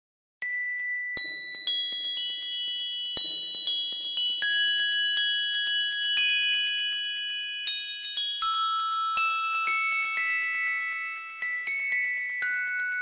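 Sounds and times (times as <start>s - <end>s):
bell-like melody: 0.4s - 13.0s.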